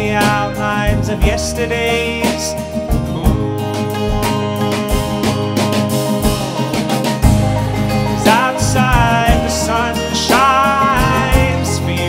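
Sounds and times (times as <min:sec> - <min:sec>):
acoustic guitar: 0:00.0 - 0:12.0
low bass notes: 0:00.0 - 0:12.0.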